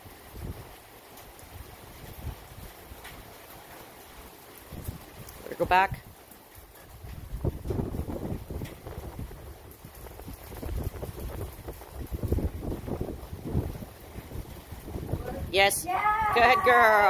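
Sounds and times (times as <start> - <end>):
wind buffeting microphone: 0.0 - 0.8, 1.4 - 3.1, 4.7 - 17.0.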